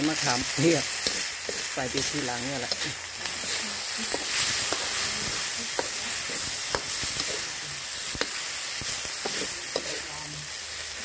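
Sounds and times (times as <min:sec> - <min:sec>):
noodles sizzling in a wok: 0:00.0 - 0:11.0
metal spatula scraping a pan: 0:00.1 - 0:10.3.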